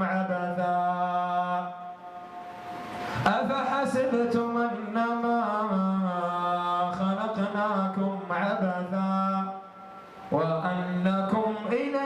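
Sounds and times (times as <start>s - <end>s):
man chanting melodically: 0.0s - 2.2s, 3.2s - 12.0s.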